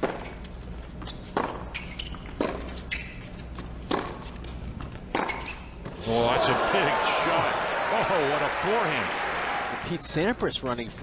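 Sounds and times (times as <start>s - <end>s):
racket hitting tennis ball: 1.3s - 1.6s, 3.9s - 4.2s.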